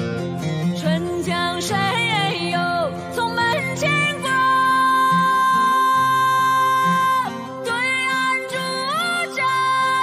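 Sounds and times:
woman singing: 0:00.6 - 0:10.0.

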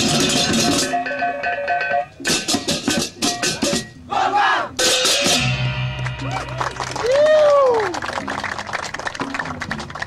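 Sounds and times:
cymbals and drums crashing: 0:00.0 - 0:01.0, 0:04.8 - 0:06.0.

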